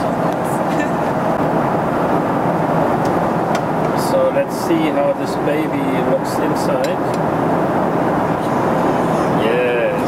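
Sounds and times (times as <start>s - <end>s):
airliner cabin noise: 0.0s - 10.0s.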